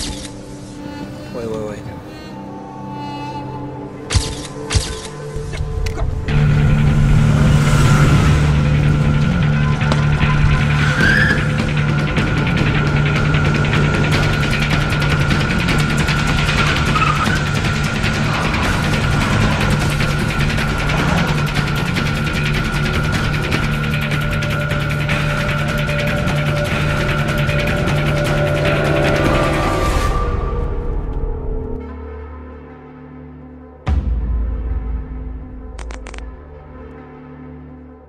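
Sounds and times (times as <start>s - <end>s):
droning music score: 0.0s - 38.0s
car engine running hard: 6.2s - 29.6s
tyre squeals: 9.6s - 11.6s.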